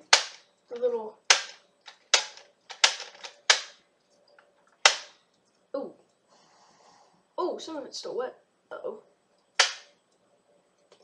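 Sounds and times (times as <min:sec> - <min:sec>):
sharp plastic clacks: 0:00.0 - 0:03.8, 0:04.7 - 0:05.2, 0:09.5 - 0:09.9.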